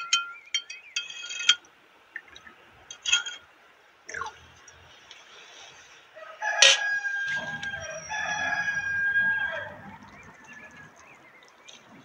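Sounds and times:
rooster crowing: 6.2s - 10.0s.

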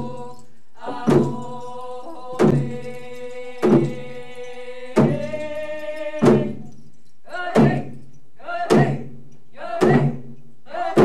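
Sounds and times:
hand drum beat: 0.0s - 6.7s
group singing held note: 0.0s - 11.0s.

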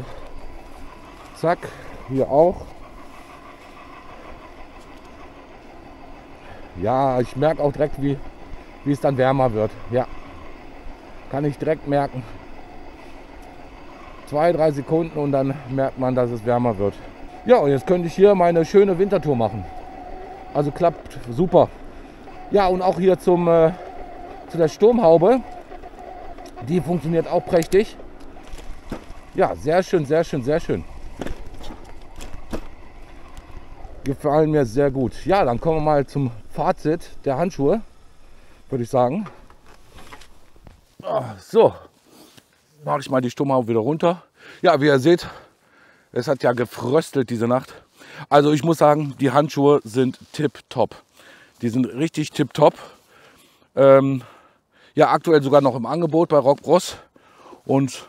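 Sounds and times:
e-bike tyres rolling on asphalt: 0.0s - 58.0s.

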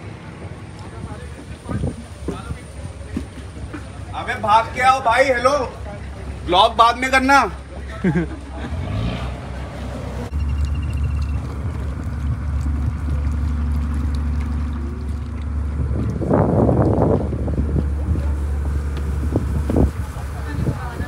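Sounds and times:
boat engine drone: 0.0s - 21.0s
wind on microphone: 0.9s - 2.9s, 10.3s - 21.0s.

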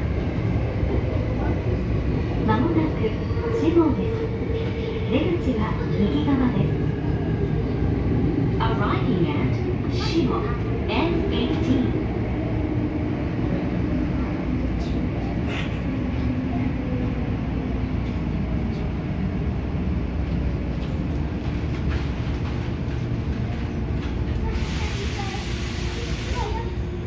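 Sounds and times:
subway train rumble: 0.0s - 27.0s
hiss: 24.6s - 26.6s.

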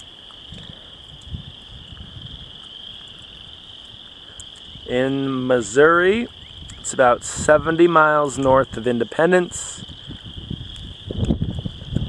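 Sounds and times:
frogs calling: 0.0s - 12.0s.

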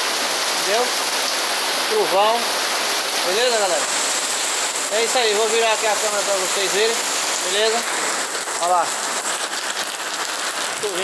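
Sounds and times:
heavy rain on tiled roof: 0.0s - 11.0s.

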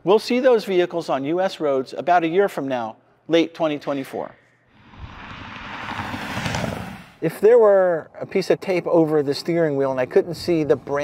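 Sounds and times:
vehicle driving past: 4.7s - 7.2s.

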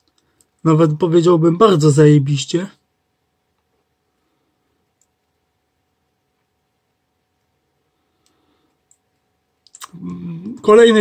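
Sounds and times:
man speaking: 0.6s - 2.9s, 9.8s - 11.0s.

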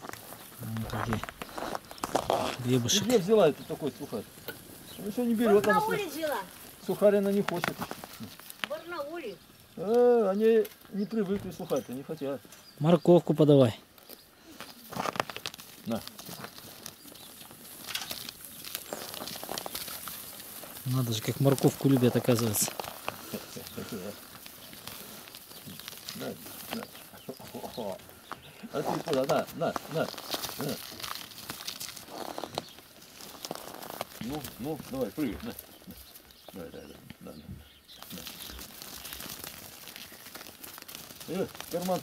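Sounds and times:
sheep crunching carrot: 0.0s - 11.7s, 13.7s - 42.0s.

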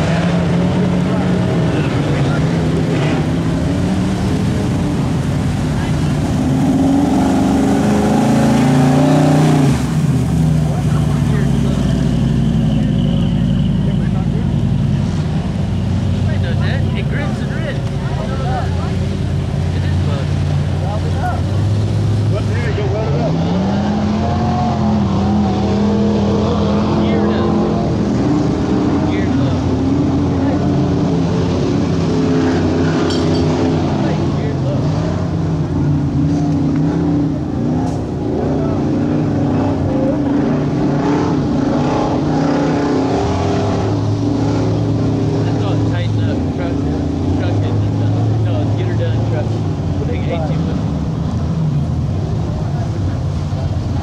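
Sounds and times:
pickup engine revving: 0.0s - 54.0s
tires churning through mud and water: 0.0s - 54.0s.

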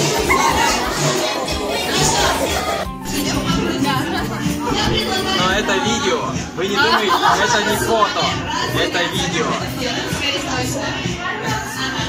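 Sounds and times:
background music: 0.0s - 12.0s
people talking in a hall: 0.0s - 12.0s.

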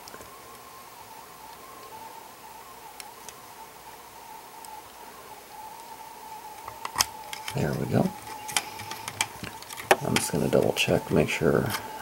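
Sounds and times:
faint steady high tone: 0.0s - 12.0s.

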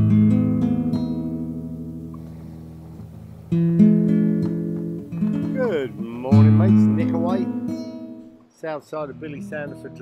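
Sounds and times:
guitar chord ringing: 0.0s - 8.4s, 9.1s - 10.0s.

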